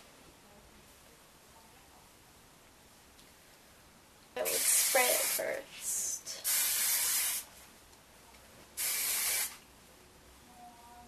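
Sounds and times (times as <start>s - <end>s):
hair spray hiss: 4.4s - 7.5s, 8.8s - 9.6s.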